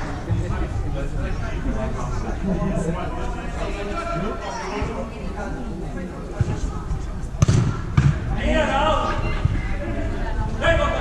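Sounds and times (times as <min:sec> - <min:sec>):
football being kicked: 0:07.4 - 0:08.3.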